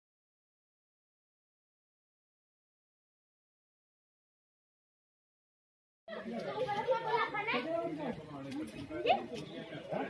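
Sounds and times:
people talking: 0:06.1 - 0:10.0.

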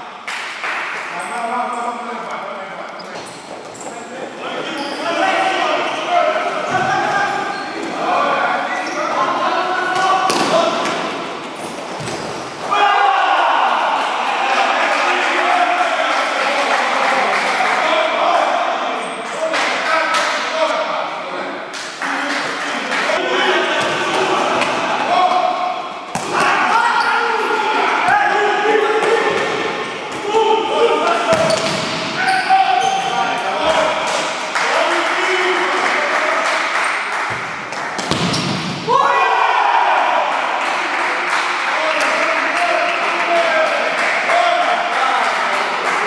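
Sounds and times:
players calling out: 0:21.9 - 0:41.0
sharp ball kicks: 0:38.0 - 0:38.8.

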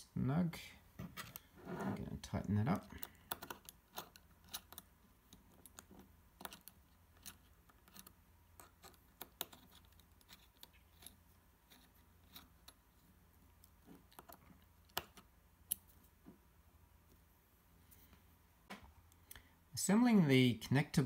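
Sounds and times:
hex key clicking and scraping: 0:02.8 - 0:16.0.

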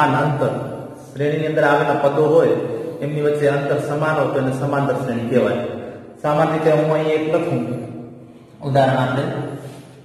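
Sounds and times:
man speaking: 0:00.0 - 0:09.9.

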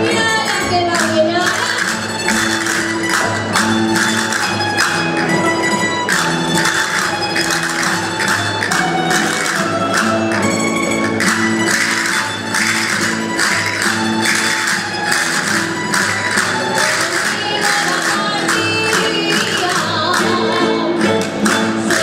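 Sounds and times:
plucked string ensemble playing: 0:00.0 - 0:22.0.

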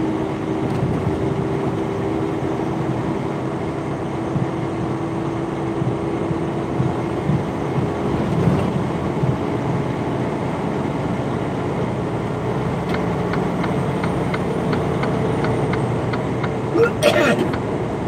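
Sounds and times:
truck engine and road drone: 0:00.0 - 0:18.0
turn signal ticking: 0:04.3 - 0:05.0, 0:05.6 - 0:08.4, 0:12.6 - 0:17.7.

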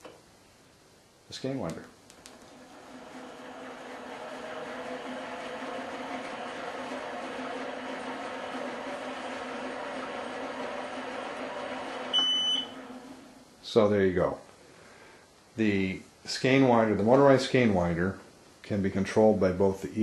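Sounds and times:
electric motor humming: 0:02.5 - 0:13.4
short high electronic beep: 0:12.1 - 0:12.7.

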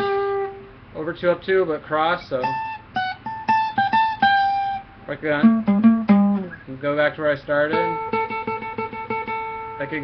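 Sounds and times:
acoustic guitar riff: 0:00.0 - 0:00.9, 0:02.2 - 0:10.0.

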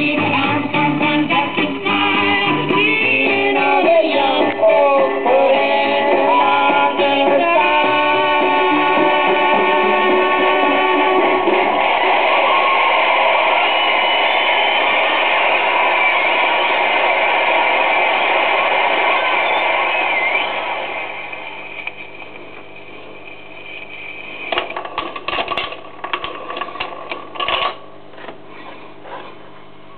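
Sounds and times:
record music with surface noise: 0:00.0 - 0:29.9.

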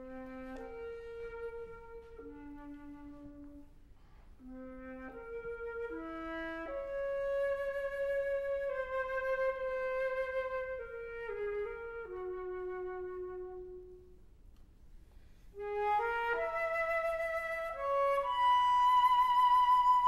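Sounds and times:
solo flute melody: 0:00.0 - 0:14.4, 0:15.3 - 0:20.0.

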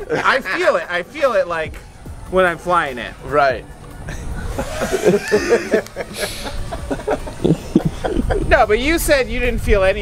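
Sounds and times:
people chuckling and laughing: 0:00.0 - 0:00.9, 0:03.8 - 0:08.7.

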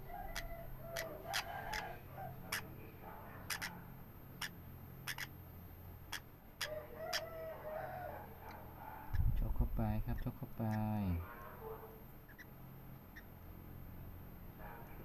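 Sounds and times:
parrot chick chirping: 0:00.0 - 0:02.8, 0:03.4 - 0:03.8, 0:04.4 - 0:05.4, 0:06.0 - 0:07.4, 0:08.4 - 0:11.2, 0:12.2 - 0:13.4.

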